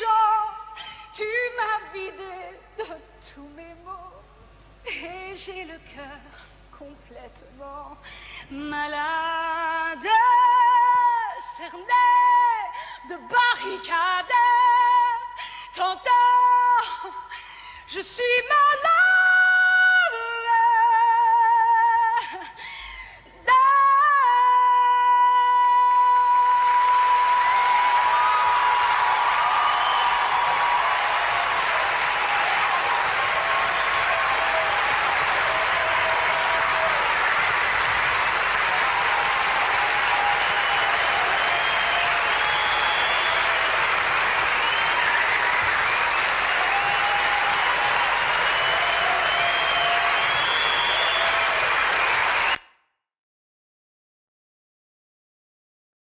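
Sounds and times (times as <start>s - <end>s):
audience applauding and cheering: 25.6s - 52.6s
audience shouts: 26.7s - 52.6s.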